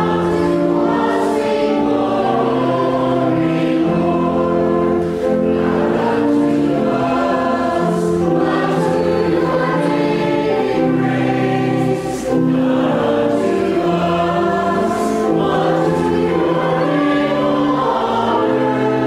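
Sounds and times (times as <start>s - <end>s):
choir singing: 0.0s - 19.0s.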